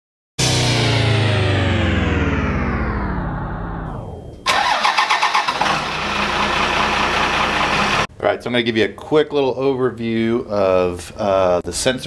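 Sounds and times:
loud pitch falling tone: 0.4s - 4.6s
engine starting and running: 0.4s - 8.1s.

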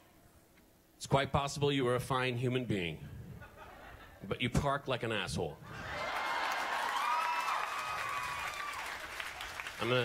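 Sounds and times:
long held whoop: 5.7s - 9.0s
audience applauding and cheering: 5.7s - 10.0s.

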